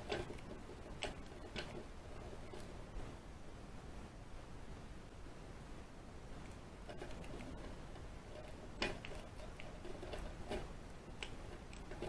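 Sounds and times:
lock pick clicking and scraping: 6.9s - 12.0s.

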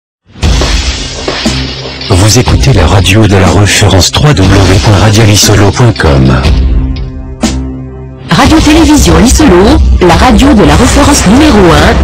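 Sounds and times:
crash-like hit: 0.3s - 2.8s
steady low music: 0.3s - 12.0s.

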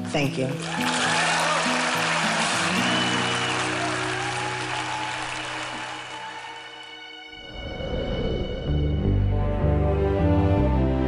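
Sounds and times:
audience applauding: 0.6s - 7.2s
music with long low notes: 0.6s - 11.0s.

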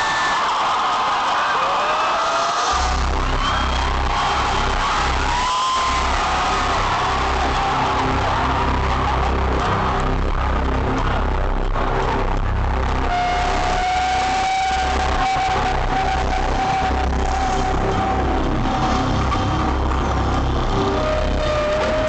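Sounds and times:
loud bass-heavy intro music: 2.6s - 22.0s.

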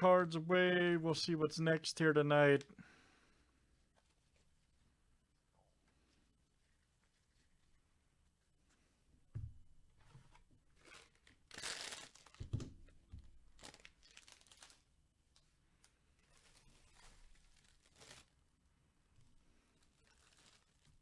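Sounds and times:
wrapper crinkling and rustling: 10.8s - 18.4s, 19.6s - 21.0s.

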